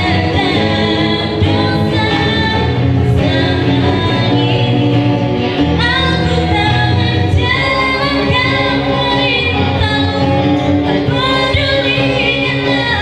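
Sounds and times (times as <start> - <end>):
acoustic guitar: 0.0 - 13.0
bass guitar: 0.0 - 13.0
electric guitar: 0.0 - 13.0
woman singing: 0.0 - 13.0.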